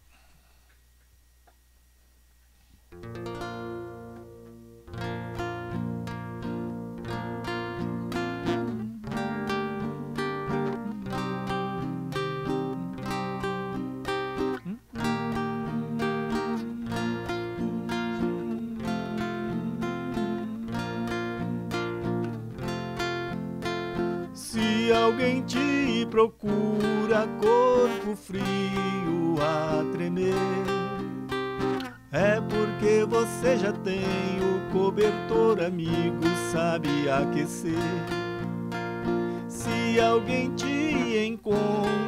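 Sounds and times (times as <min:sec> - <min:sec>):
acoustic guitar strumming chords: 0:02.9 - 0:42.0
person singing: 0:07.5 - 0:22.9, 0:24.0 - 0:38.5, 0:39.1 - 0:42.0.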